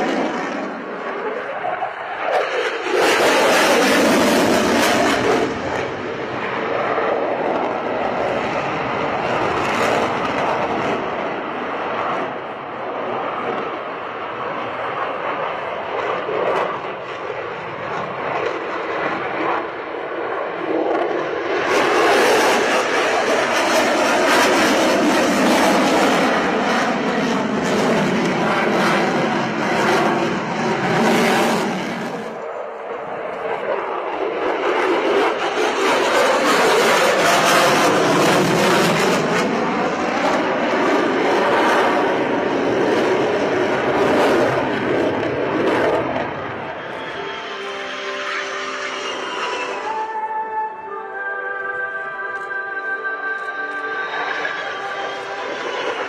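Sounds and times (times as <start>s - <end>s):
jet flying past: 0.0s - 50.9s, 53.0s - 56.0s.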